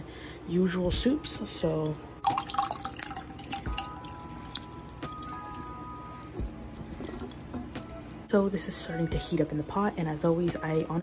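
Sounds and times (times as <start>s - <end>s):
soft background music: 0.4s - 11.0s
soup pouring into a saucepan: 2.2s - 5.8s.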